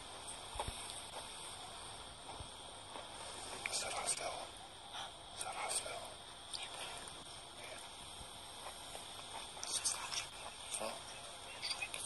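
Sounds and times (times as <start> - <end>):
steady hiss: 0.0 - 12.0
people whispering: 3.0 - 12.0.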